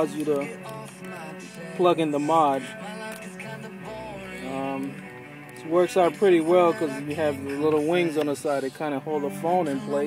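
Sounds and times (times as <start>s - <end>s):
quiet music from car radio: 0.0s - 10.0s.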